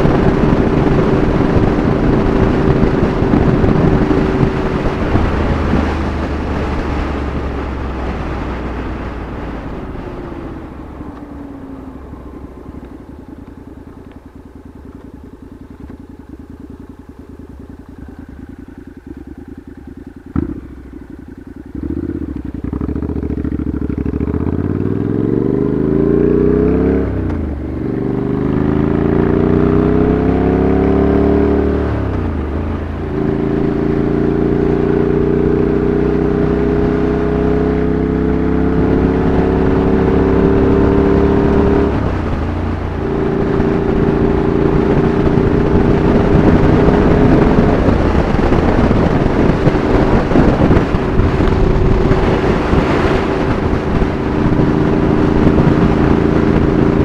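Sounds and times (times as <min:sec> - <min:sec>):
motorcycle engine accelerating: 0:00.0 - 0:57.0.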